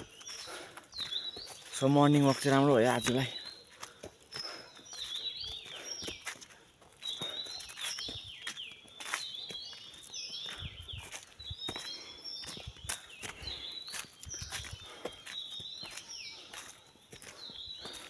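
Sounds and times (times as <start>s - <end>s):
footsteps on forest path: 0.0s - 18.0s.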